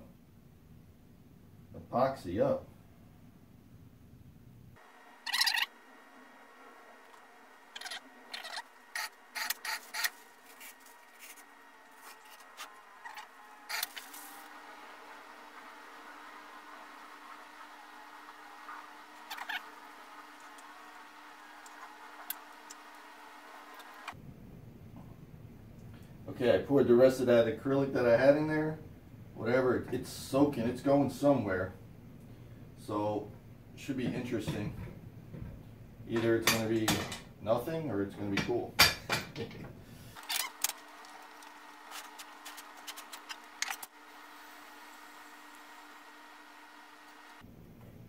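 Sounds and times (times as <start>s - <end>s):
faint steady hum: 0.0s - 48.0s.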